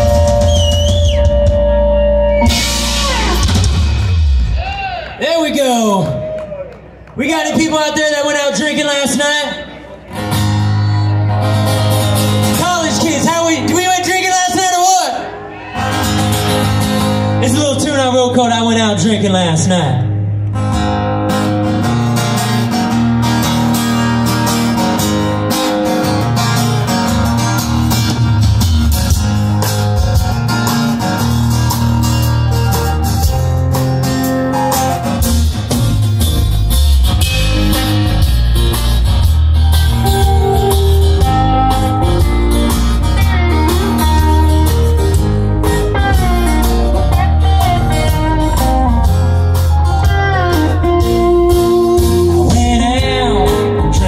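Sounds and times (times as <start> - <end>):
electric guitar: 0.0 - 5.2, 9.6 - 14.3, 15.1 - 54.0
drums: 0.0 - 6.5, 10.1 - 14.7, 15.6 - 18.0, 20.6 - 54.0
bass guitar: 0.0 - 7.2, 9.6 - 54.0
keyboard: 0.0 - 54.0
acoustic guitar: 9.9 - 14.2, 15.2 - 54.0.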